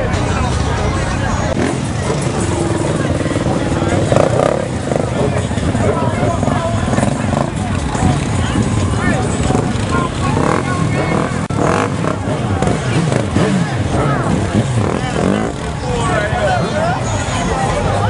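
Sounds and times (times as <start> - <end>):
crowd talking and calling out: 0.0 - 18.0
motorcycle engines idling: 0.0 - 18.0.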